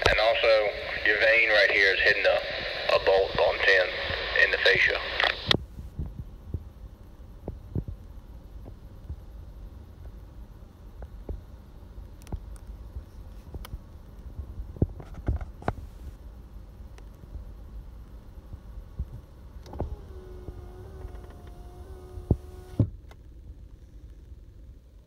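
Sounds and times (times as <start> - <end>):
voice over scanner speaker: 0.0 - 5.5
low steady rumble: 0.0 - 25.0.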